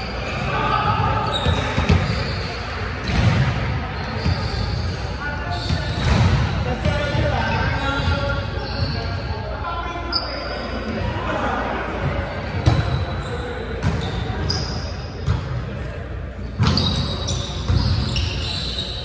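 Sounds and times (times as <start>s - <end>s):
voices echoing in a gymnasium: 0.0s - 19.0s.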